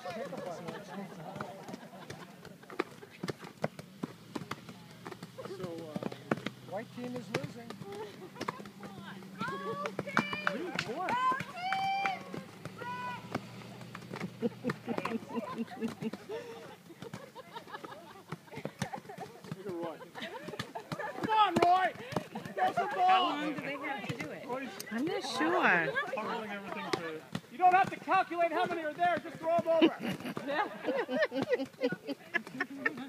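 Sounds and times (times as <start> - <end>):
hands smacking volleyballs: 0.0 - 33.0
players calling out: 0.0 - 33.0.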